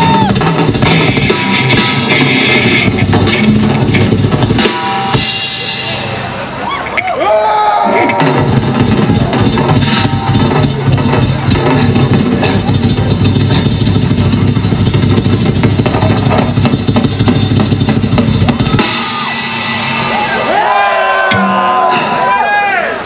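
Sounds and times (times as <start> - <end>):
drum kit playing: 0.0 - 6.6, 7.8 - 23.0
live heavy metal band: 0.0 - 23.0.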